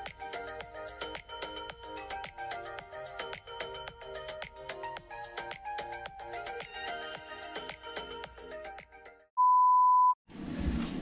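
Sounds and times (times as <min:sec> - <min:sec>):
steady test-tone beep: 0:09.4 - 0:10.2.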